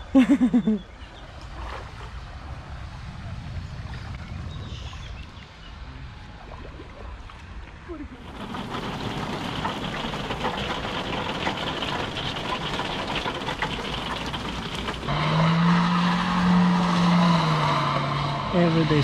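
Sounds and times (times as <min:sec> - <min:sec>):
rain pattering on roof: 0:08.2 - 0:15.8
car engine droning: 0:08.2 - 0:19.0.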